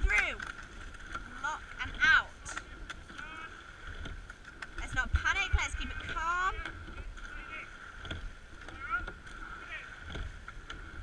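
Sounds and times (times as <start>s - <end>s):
water wash: 0.0s - 11.0s.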